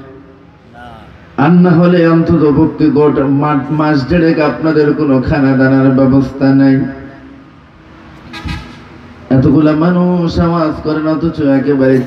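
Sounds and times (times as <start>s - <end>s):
man preaching over loudspeaker: 0.0s - 7.1s, 9.3s - 12.0s
low steady background noise: 0.0s - 12.0s.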